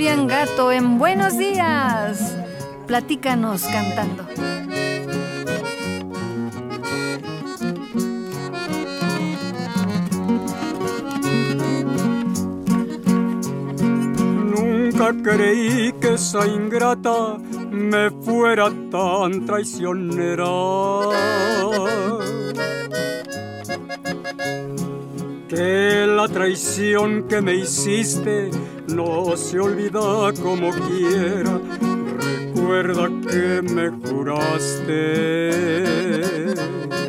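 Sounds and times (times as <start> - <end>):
person singing: 0.0 - 5.4, 14.0 - 22.9, 25.5 - 37.0
bass line: 0.0 - 16.4
accordion playing: 0.0 - 37.0
strummed guitar: 0.0 - 37.0.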